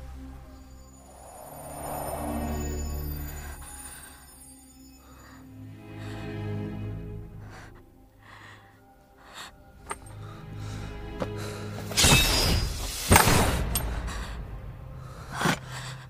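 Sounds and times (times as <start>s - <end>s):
film score music: 0.0s - 16.0s.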